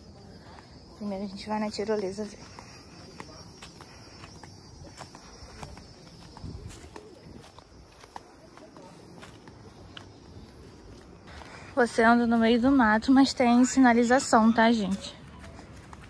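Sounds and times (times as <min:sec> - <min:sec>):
footsteps on dirt trail: 0:00.0 - 0:16.0.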